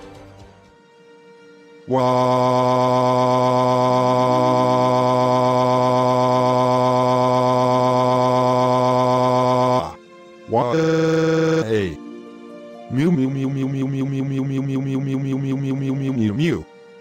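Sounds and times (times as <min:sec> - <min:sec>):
synthetic voice wailing: 0:01.9 - 0:12.0, 0:12.9 - 0:16.6.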